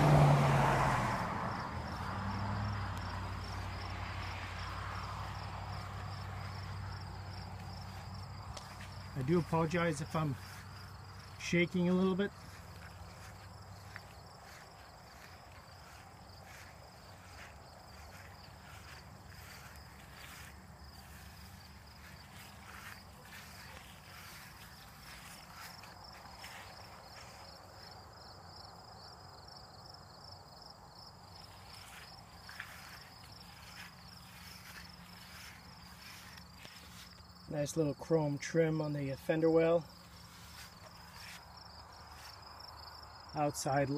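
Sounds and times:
crickets chirping: 0.0 - 43.9
footsteps on grass: 3.0 - 28.0, 31.3 - 38.0, 39.1 - 43.8.

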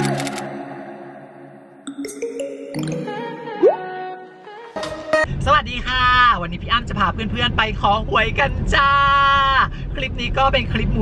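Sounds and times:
intro jingle with pitched notes: 0.9 - 4.2.

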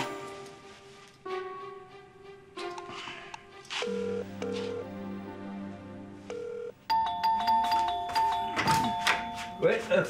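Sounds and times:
electronic doorbell chime: 6.3 - 10.0
man speaking: 9.6 - 10.0.

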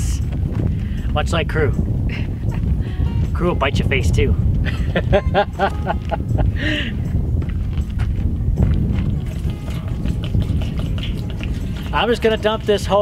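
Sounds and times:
wind buffeting microphone: 0.0 - 13.0
man laughing: 4.6 - 7.0.

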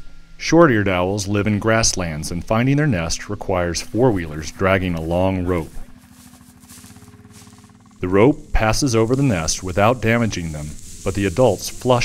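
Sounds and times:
atv engine running: 0.6 - 12.0.

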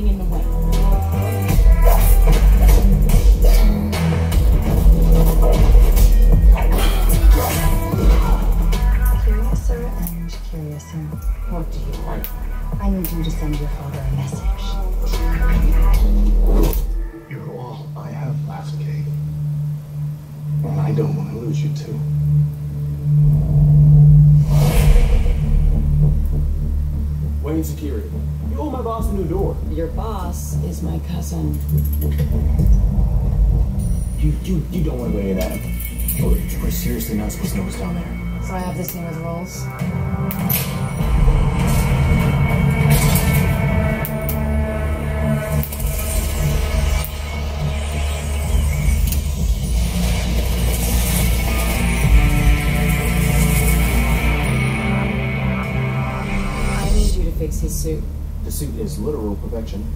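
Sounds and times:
deep rumble over speakers: 0.0 - 59.9
trailer music: 0.0 - 59.9
rushing sweep: 23.0 - 27.5.

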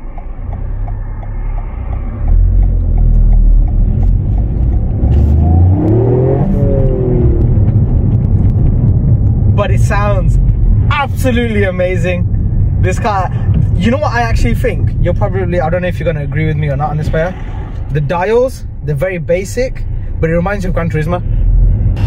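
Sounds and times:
car engine revving from cabin: 1.0 - 8.1.

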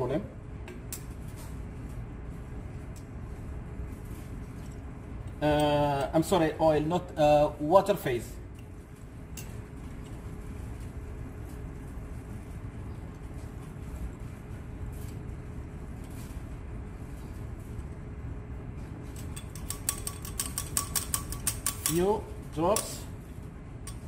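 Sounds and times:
low lab hum: 0.0 - 24.0.

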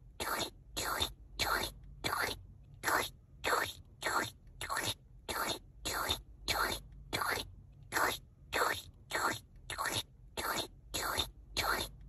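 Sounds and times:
person making hissing mouth sounds: 0.2 - 12.0.

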